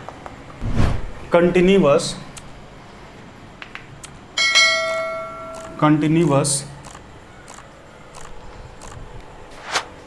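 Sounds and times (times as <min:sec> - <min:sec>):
bell chime: 0:04.4 - 0:05.6.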